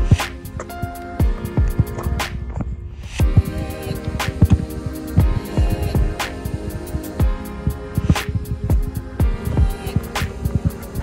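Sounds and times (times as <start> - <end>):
electronic music with thudding beat: 0.0 - 11.0.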